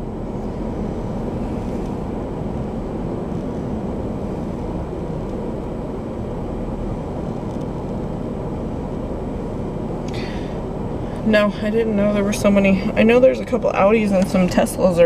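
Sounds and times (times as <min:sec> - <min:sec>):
low rumble in car cabin: 0:00.0 - 0:15.0.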